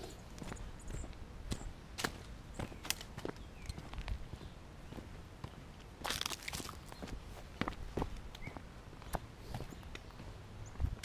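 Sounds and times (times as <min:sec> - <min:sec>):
footsteps of people walking: 0:00.0 - 0:11.0
rustling crunch: 0:05.5 - 0:08.5.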